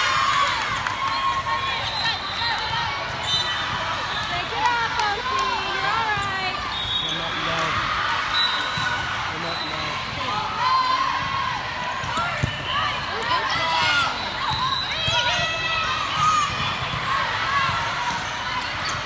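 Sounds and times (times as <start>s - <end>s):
many overlapping voices in a hall: 0.0s - 19.0s
volleyballs thudding: 11.1s - 13.4s.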